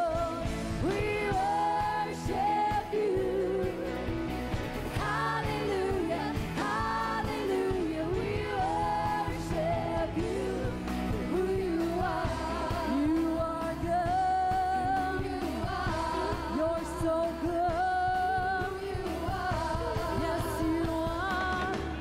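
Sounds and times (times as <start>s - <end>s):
live band playing: 0.0s - 22.0s
women singing in harmony: 0.0s - 22.0s.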